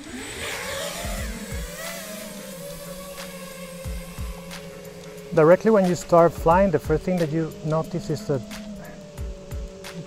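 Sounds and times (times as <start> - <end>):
drone motors whining: 0.0 - 10.0
music with thumping beat: 0.9 - 10.0.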